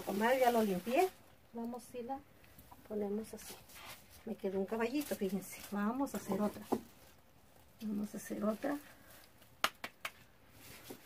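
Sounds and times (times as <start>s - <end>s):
soft rustle of plastic sheet: 0.0s - 2.0s, 2.9s - 9.5s, 10.4s - 11.0s.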